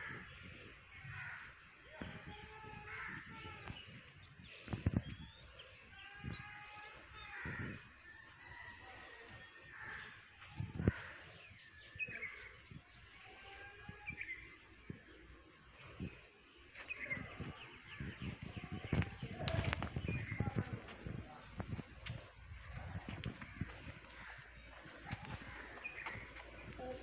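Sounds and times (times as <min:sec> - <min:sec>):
birds calling and chirping: 0:00.0 - 0:27.0.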